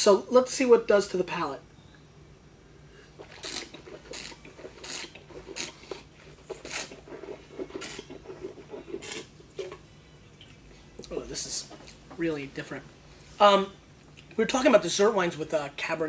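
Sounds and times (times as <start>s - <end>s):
person slurping wine: 3.2s - 9.3s.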